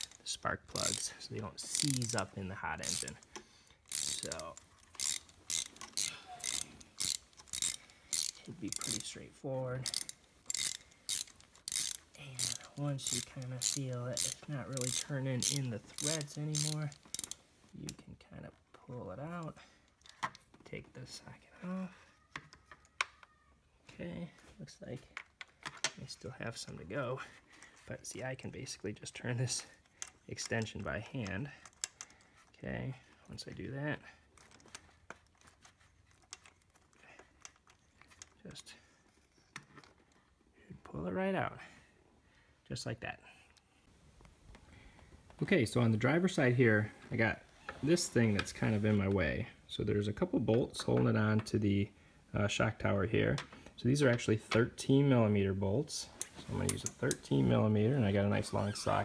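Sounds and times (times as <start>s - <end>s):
socket wrench ratchet clicking: 0.0s - 0.2s, 0.8s - 9.1s, 9.8s - 17.4s
metal socket wrench clicks: 9.8s - 17.4s.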